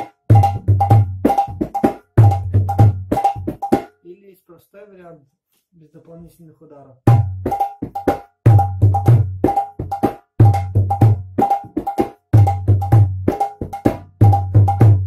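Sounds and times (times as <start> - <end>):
hand drum bass and treble strokes: 7.1 - 15.0.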